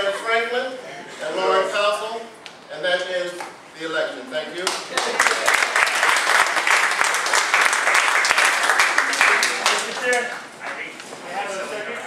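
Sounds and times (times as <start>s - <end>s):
crowd applauding: 4.7s - 10.6s.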